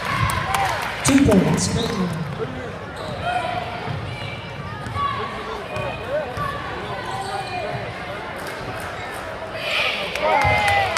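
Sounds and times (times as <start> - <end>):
crowd voices: 0.0 - 10.9.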